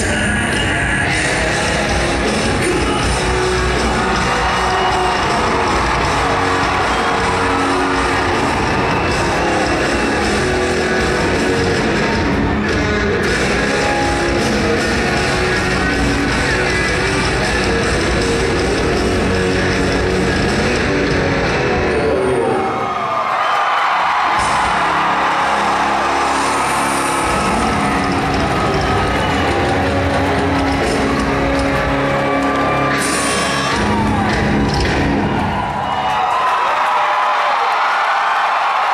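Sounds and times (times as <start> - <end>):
live rock band playing: 0.0 - 22.6, 24.0 - 36.4
crowd cheering and whooping: 1.2 - 38.9.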